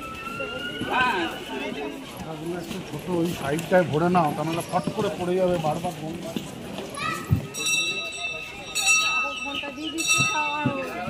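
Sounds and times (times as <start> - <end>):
crowd chatter: 0.0 - 11.0
bell ringing: 7.5 - 11.0.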